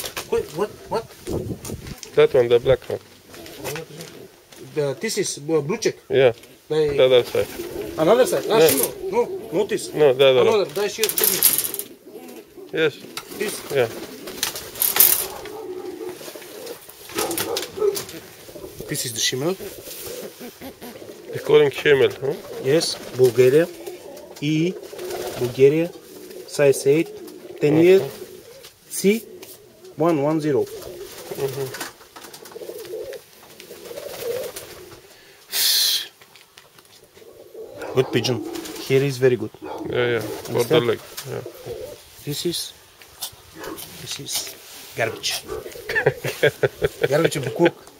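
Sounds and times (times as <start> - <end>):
pigeons cooing: 0.0 - 36.1, 36.9 - 47.9
handling rustle: 10.4 - 26.5.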